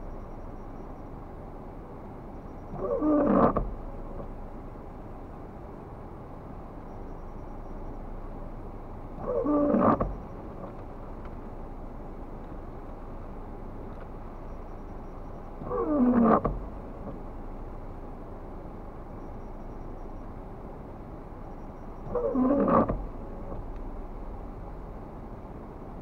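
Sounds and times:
steady background rumble: 0:00.0 - 0:26.0.

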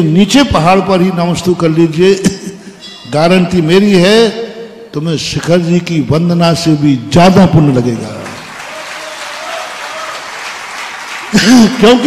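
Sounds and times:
audience applauding: 0:08.1 - 0:12.0.

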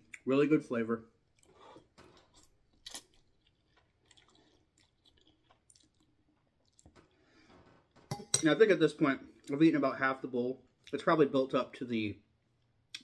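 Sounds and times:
chewing noodles: 0:01.3 - 0:07.0.

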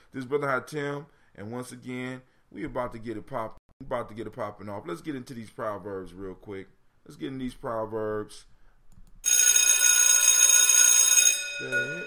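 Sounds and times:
bell-like ringing from speaker: 0:09.2 - 0:12.0.

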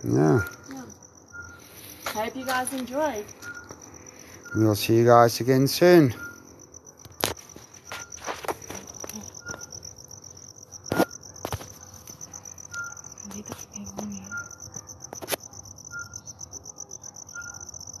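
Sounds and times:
crickets chirping: 0:00.0 - 0:18.0.

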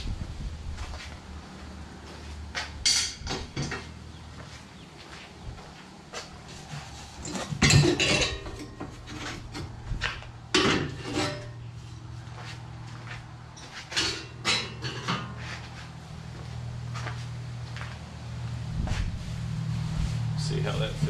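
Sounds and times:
metal frame clanking and scraping: 0:06.5 - 0:11.7, 0:13.6 - 0:15.9.

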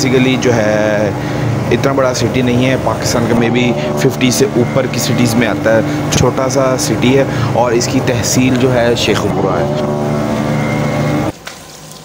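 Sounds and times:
faint hum: 0:00.0 - 0:11.3
motorcycle engine running: 0:00.0 - 0:11.3.

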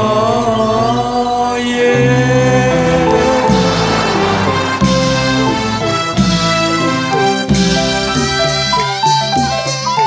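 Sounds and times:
sustained instrumental backing: 0:02.1 - 0:08.7
bass note: 0:02.6 - 0:06.9.

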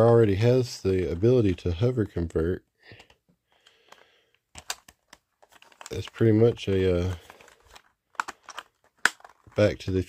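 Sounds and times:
sharp plastic clicks: 0:02.9 - 0:06.2, 0:07.1 - 0:09.6.

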